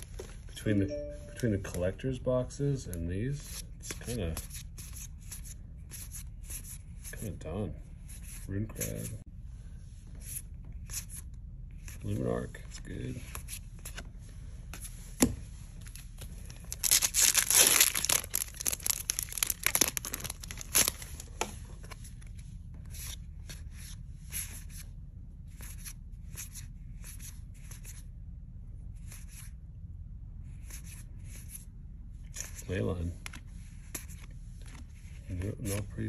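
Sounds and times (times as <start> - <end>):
foil wrapper tearing: 16.7 - 21.2.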